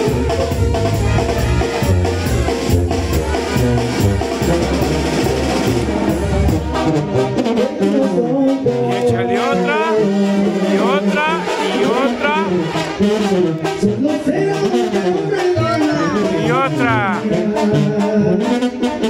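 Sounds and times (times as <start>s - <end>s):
brass band music: 0.0s - 19.0s.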